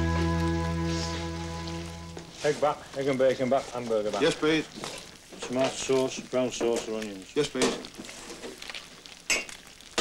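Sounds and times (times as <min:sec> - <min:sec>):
quiet hiss: 0:00.0 - 0:10.0.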